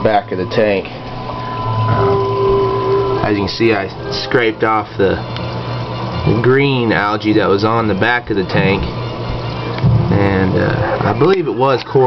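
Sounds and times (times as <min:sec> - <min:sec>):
second steady tone: 0:00.0 - 0:05.0
aquarium pump hum: 0:00.0 - 0:12.0
circulating water: 0:00.0 - 0:12.0.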